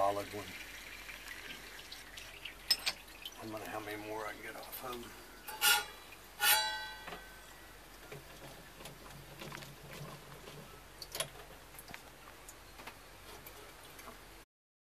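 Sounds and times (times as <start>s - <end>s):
metallic clank: 5.5s - 7.4s.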